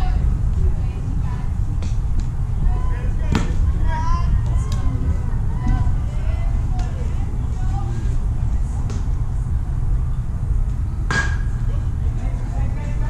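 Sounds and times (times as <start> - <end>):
distant indistinct voices: 0.0 - 13.0
steady low rumble: 0.0 - 13.0.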